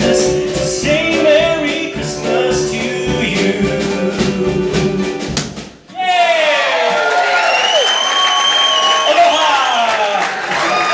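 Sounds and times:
man singing: 0.0 - 5.3.

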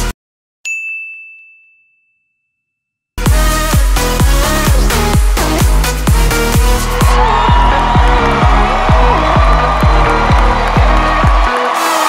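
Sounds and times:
high bell-like ding: 0.7 - 3.0
dance music: 3.2 - 12.0.

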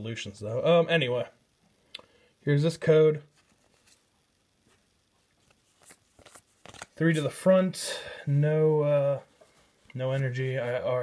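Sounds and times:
trading cards rustling and clicking: 5.4 - 7.3.

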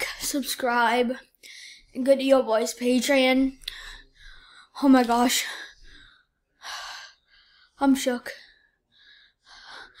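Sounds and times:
boy speaking: 0.0 - 3.6, 4.8 - 5.7, 7.8 - 8.5.

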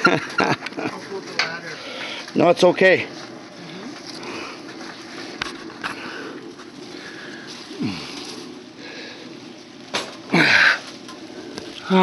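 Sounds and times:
leaves and branches rustling: 0.0 - 12.0.

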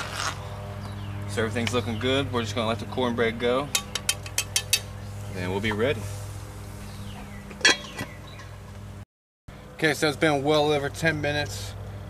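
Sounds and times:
metal lid clanking on pot: 7.6 - 8.1.

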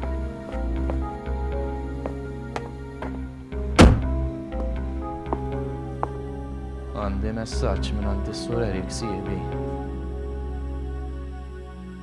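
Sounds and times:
soft background music: 0.0 - 12.0
car door shutting: 3.7 - 4.3.

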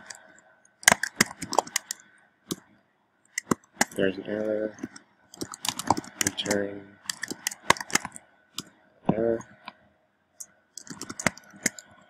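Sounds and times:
keystrokes on computer keyboard: 0.0 - 2.6, 3.3 - 4.0, 4.7 - 8.8, 10.4 - 12.0.

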